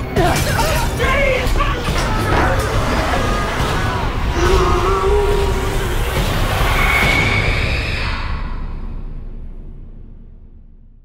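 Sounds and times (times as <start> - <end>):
loud wash of horror music: 0.0 - 11.0.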